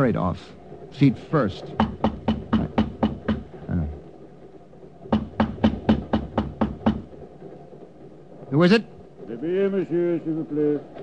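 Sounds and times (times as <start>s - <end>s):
rapid knocking on door: 1.6s - 3.7s, 5.0s - 7.3s.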